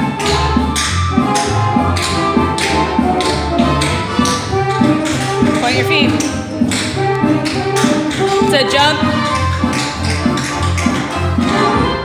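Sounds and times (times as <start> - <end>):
recorded music with steady beat: 0.0 - 12.0
tap shoes clicking on floor: 0.2 - 11.6.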